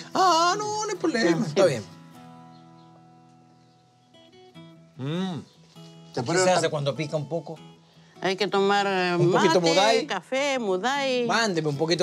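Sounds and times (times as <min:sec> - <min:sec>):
soft acoustic guitar music: 0:00.0 - 0:12.0.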